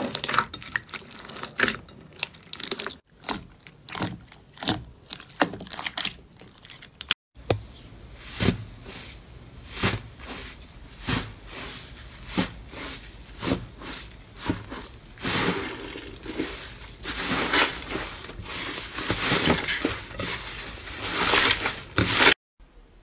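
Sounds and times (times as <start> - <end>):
hands squishing crumbly slime: 0.0 - 7.1, 8.1 - 22.3.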